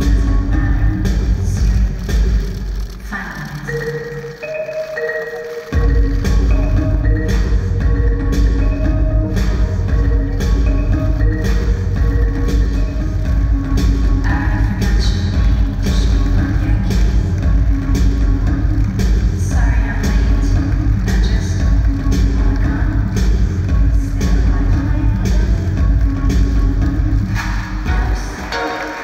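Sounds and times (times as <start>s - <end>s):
music with heavy bass beat: 0.0s - 29.0s.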